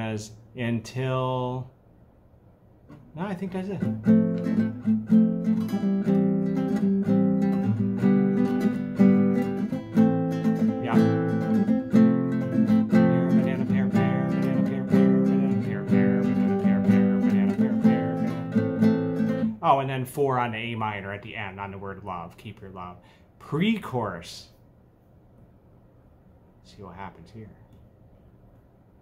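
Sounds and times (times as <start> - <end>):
classical guitar strumming: 3.7 - 19.7.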